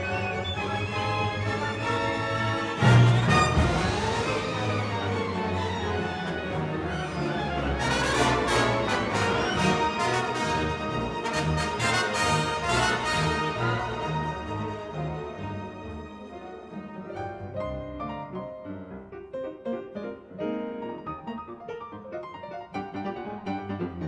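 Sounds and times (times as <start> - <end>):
orchestra playing jazzy concerto: 0.0 - 24.0.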